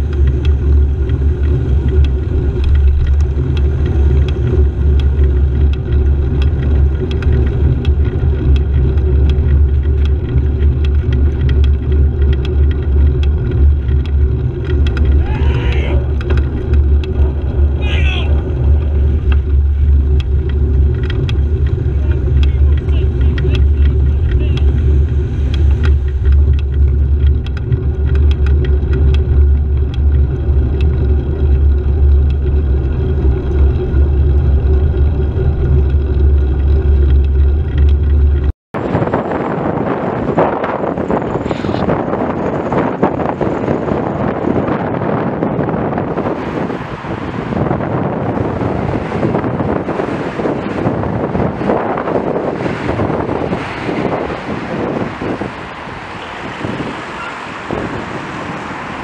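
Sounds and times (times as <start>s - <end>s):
wind and road noise rumble: 0.0s - 59.0s.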